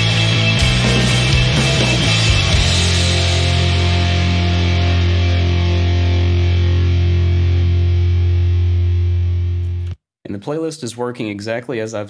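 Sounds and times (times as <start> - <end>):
distorted electric guitars and bass chord: 0.0 - 10.0.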